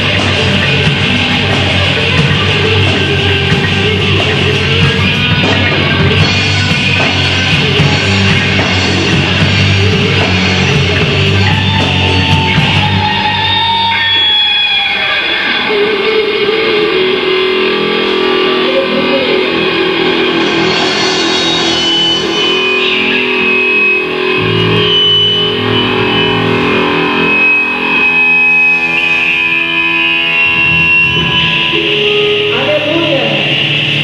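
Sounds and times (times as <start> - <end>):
deep bass: 0.0 - 14.1, 18.1 - 34.0
electric guitar sustained chords: 0.0 - 34.0.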